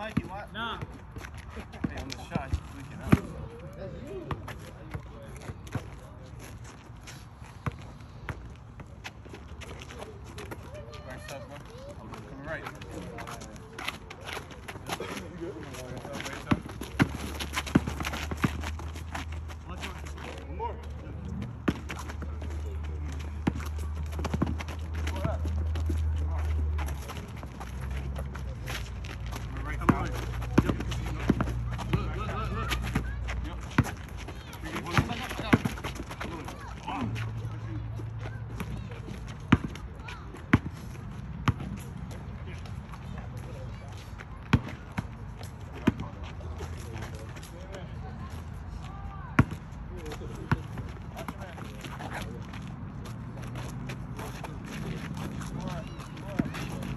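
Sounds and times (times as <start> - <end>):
players calling out: 10.0 - 40.4
basketball bouncing: 16.4 - 18.9, 29.8 - 34.1, 34.7 - 36.4, 38.6 - 39.8.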